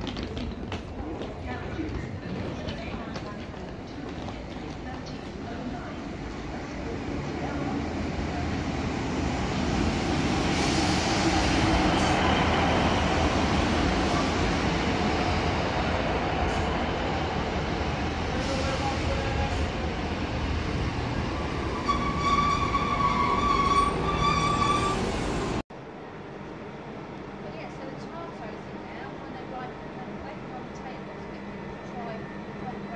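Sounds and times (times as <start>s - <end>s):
train engine and wheels rumbling: 0.0s - 32.9s
high-pitched brake squeals: 21.7s - 25.6s.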